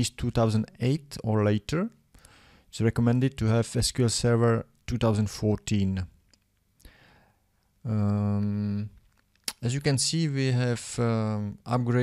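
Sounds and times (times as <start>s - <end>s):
man speaking: 0.0s - 2.0s, 2.7s - 6.1s, 7.9s - 12.0s
soft breath: 2.2s - 2.7s, 6.8s - 7.7s
man saying um: 7.9s - 8.9s.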